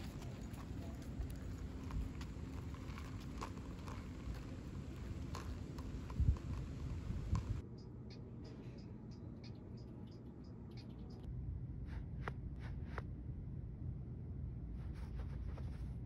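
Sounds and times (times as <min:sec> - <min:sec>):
low outdoor rumble: 0:00.0 - 0:16.0
wind thumps on microphone: 0:03.0 - 0:07.6.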